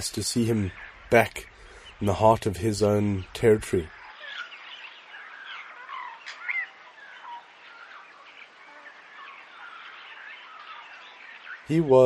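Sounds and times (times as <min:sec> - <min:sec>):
wild birds chirping: 0:00.0 - 0:12.0.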